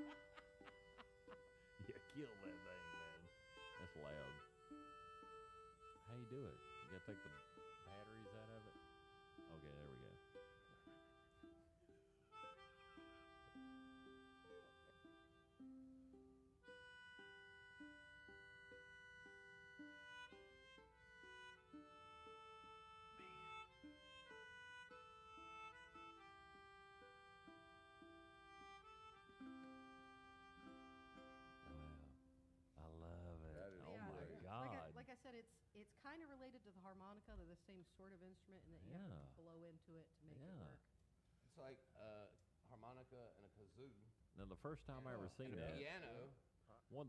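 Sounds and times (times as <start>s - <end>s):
melodica melody: 0.0s - 32.2s, 32.8s - 35.0s
plucked stringed instrument: 0.0s - 35.0s.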